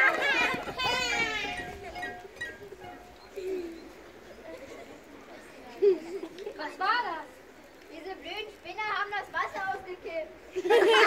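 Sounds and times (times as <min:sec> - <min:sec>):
faint low voices: 0:00.0 - 0:08.7.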